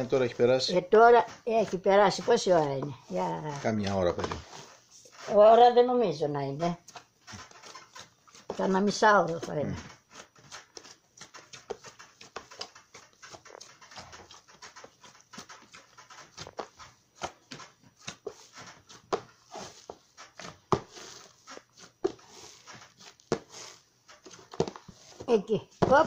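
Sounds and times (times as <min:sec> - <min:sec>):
dough squelching and slapping: 0:00.0 - 0:26.0.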